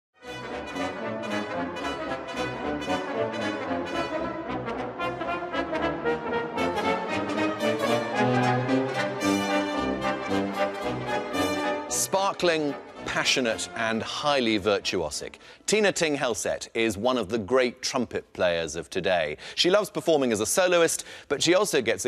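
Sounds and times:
brass ensemble playing: 0.2s - 14.8s.

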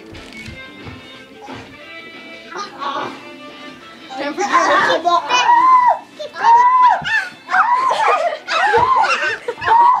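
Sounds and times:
high-pitched laughter and squealing: 4.7s - 10.0s.

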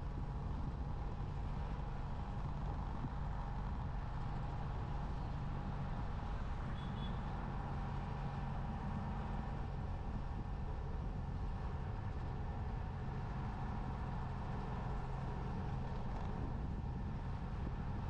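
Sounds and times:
road and wind noise: 0.0s - 18.0s
vehicle engine drone: 0.0s - 18.0s
faint high chirp: 6.8s - 7.3s.

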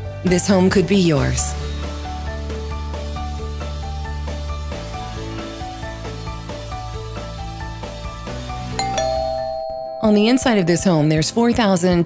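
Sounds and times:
background music: 0.0s - 12.0s
ding-dong doorbell chime: 8.8s - 11.6s.

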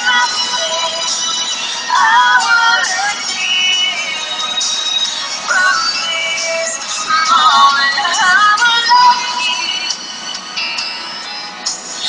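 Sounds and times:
woman singing a slow ballad: 5.4s - 10.0s.

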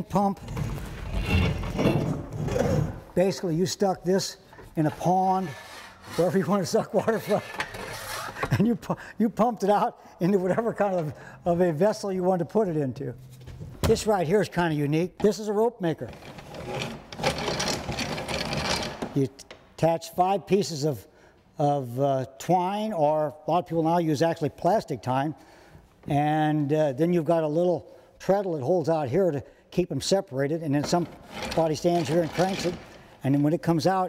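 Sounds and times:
hand-cranked gears clattering: 16.1s - 19.2s, 30.8s - 33.0s.

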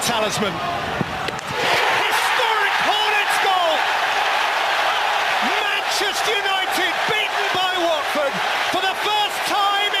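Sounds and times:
stadium crowd cheering: 0.1s - 10.0s
excited commentator speaking: 1.8s - 3.9s, 5.4s - 10.0s.

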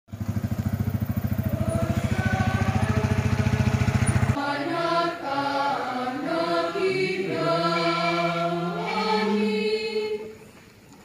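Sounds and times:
motorcycle engine running: 0.1s - 4.4s
group singing a hymn: 1.3s - 10.6s.

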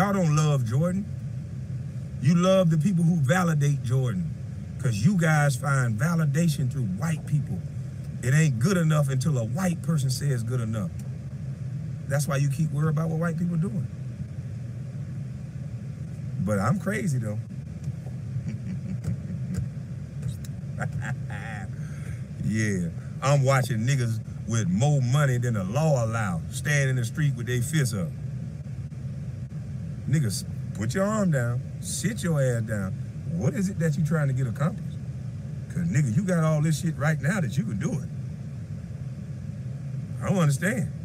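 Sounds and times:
car engine idling: 0.0s - 41.0s.

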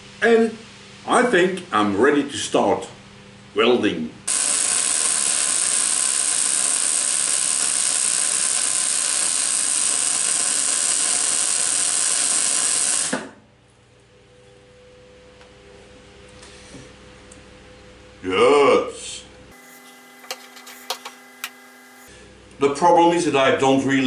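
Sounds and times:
welding arc burning: 4.3s - 13.3s, 19.5s - 22.1s.

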